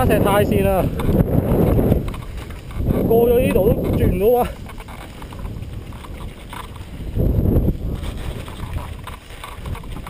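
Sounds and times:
bike handling rumble: 0.0 - 10.0
wind: 0.0 - 10.0.

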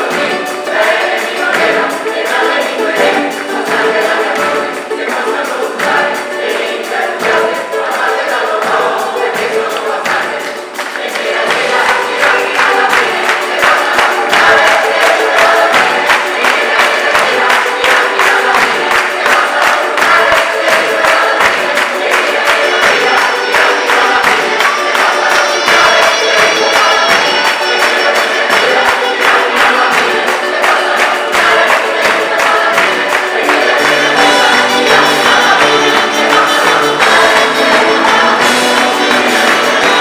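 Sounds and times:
button accordions: 0.0 - 40.0
choir singing: 0.0 - 40.0
drum kit: 0.0 - 40.0
frame drums: 0.0 - 40.0
guitars: 0.0 - 40.0.

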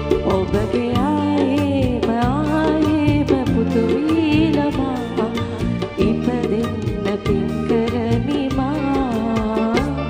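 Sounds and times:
live band: 0.0 - 10.0
woman singing: 0.0 - 10.0.

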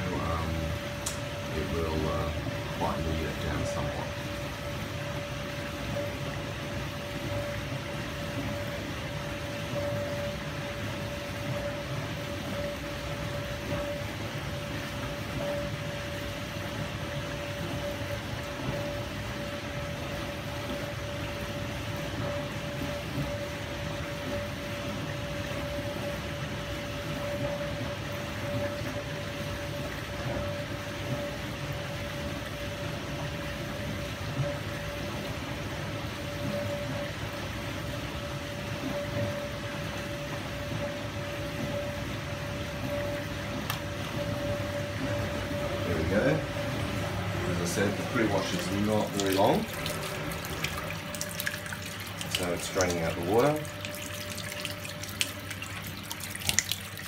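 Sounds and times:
dishwasher pump hum: 0.0 - 57.0
water circulating: 0.0 - 57.0.

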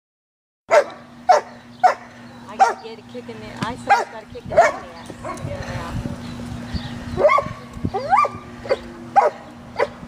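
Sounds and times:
dog barking: 0.7 - 2.0, 2.6 - 2.9, 3.9 - 5.4, 7.2 - 10.0.

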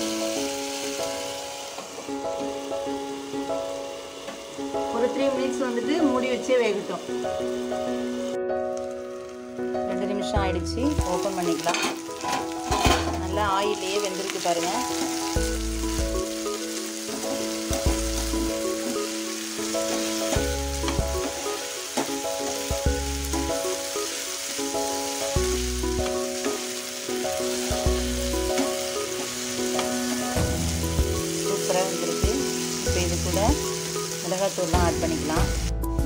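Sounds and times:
potatoes sizzling in oil: 0.0 - 35.8
background music: 0.0 - 36.0.

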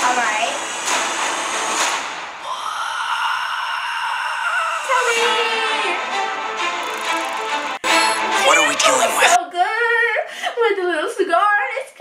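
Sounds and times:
high-pitched cartoon scream: 2.5 - 6.0.

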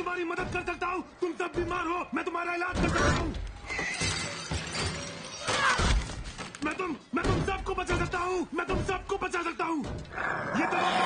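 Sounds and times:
glass cracking and crashing: 3.6 - 7.5.

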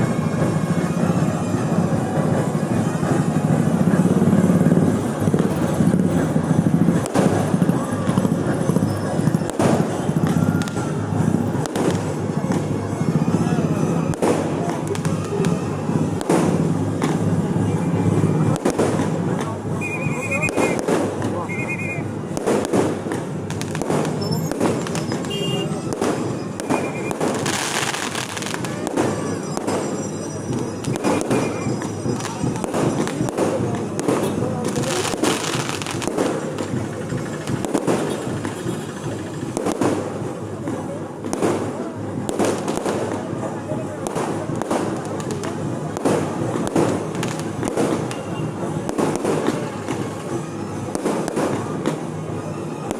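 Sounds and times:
fireworks bangs and crackles: 0.0 - 52.9.

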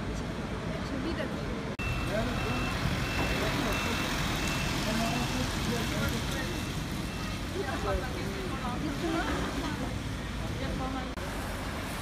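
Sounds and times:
high electronic warning beeps: 1.8 - 5.4.

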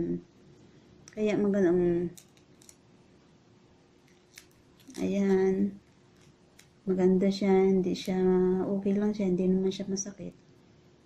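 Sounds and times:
face mask peeling crackles: 2.1 - 2.8, 4.0 - 6.9.

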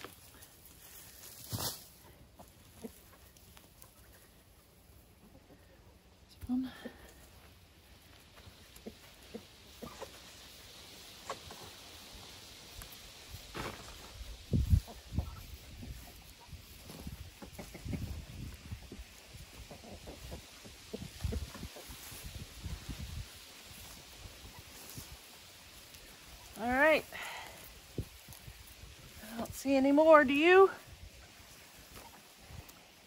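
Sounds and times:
hands digging in soil: 0.0 - 4.1.

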